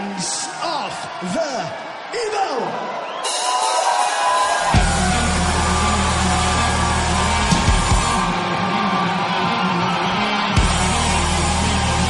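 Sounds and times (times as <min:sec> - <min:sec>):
heavy metal band playing: 0:03.3 - 0:12.0.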